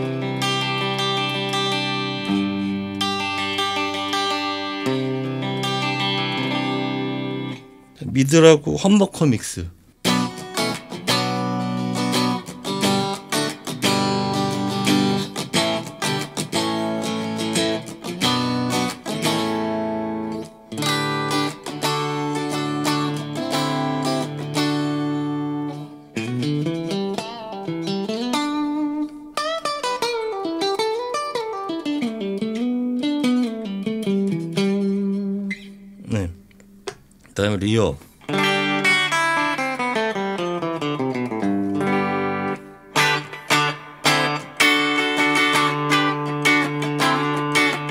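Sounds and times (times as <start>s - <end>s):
clean electric guitar: 0.0s - 47.9s.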